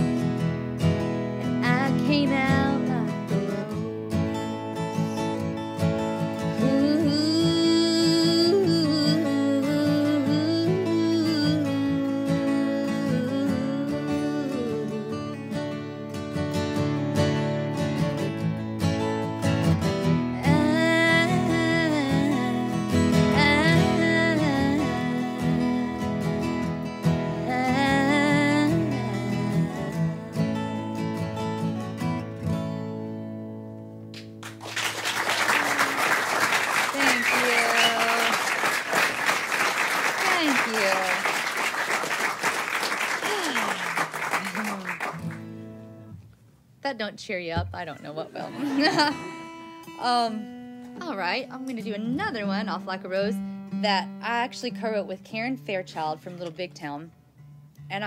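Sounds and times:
acoustic guitars: 0.0s - 58.0s
woman singing country song: 1.4s - 5.5s, 6.2s - 15.9s, 20.0s - 31.3s, 36.9s - 38.4s, 47.4s - 57.1s
audience applauding: 34.2s - 45.5s.

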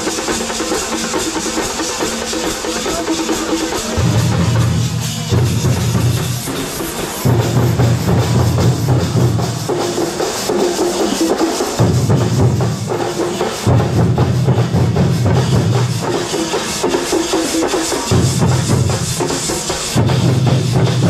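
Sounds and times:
drum-driven percussion music: 0.0s - 21.0s.

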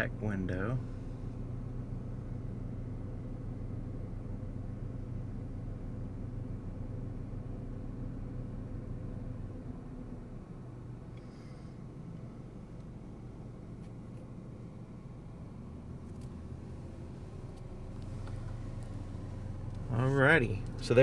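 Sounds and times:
car engine hum inside cabin: 0.0s - 21.0s.

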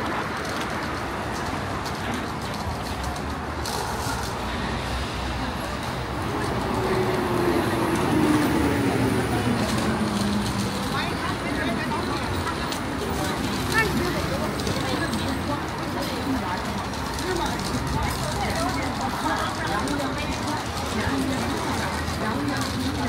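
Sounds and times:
bus passing with whine: 0.0s - 23.0s
passers-by talking: 0.0s - 23.0s
road traffic: 0.0s - 23.0s.

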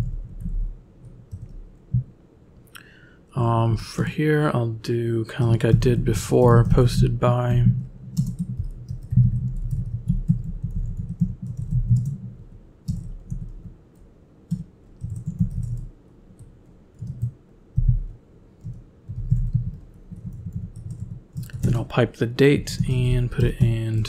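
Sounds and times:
typing on computer keyboard: 0.0s - 1.6s, 8.1s - 18.0s, 18.6s - 21.8s.

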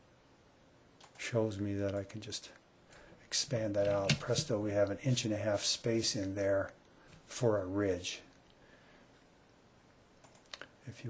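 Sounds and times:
faint mouse clicks: 1.0s - 3.0s, 10.2s - 10.8s.

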